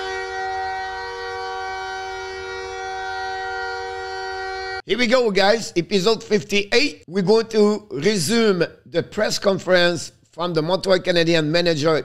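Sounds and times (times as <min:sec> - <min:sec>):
steady horn-like chord: 0:00.0 - 0:04.9.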